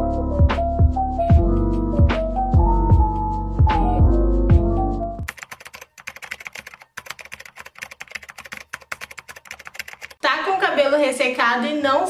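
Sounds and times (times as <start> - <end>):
background music: 0.0 - 6.0
computer keyboard typing: 5.3 - 10.2.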